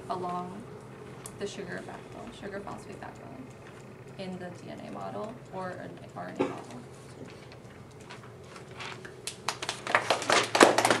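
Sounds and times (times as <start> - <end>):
people clapping: 9.2 - 11.0.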